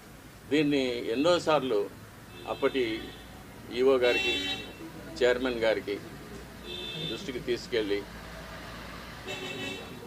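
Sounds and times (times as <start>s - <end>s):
distant road traffic rumbling: 0.0s - 10.0s
vehicle horn toot: 2.3s - 3.4s, 6.6s - 7.2s, 9.3s - 10.0s.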